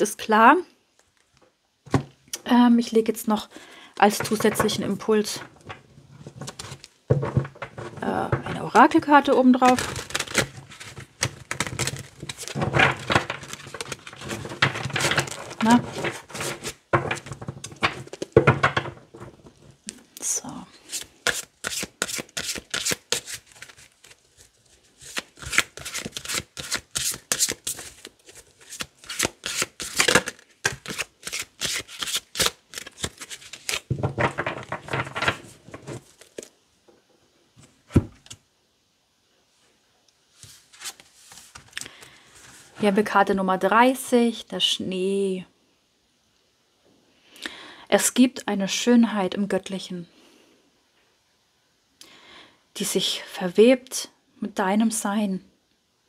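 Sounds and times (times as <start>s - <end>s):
cards being shuffled: 4.0s - 19.7s, 20.8s - 36.5s, 40.4s - 42.7s.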